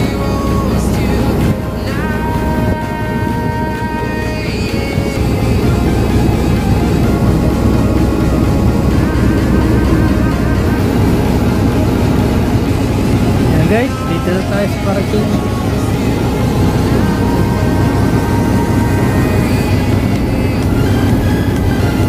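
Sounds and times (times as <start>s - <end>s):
bus engine drone: 0.0s - 22.0s
rising engine whine: 0.0s - 22.0s.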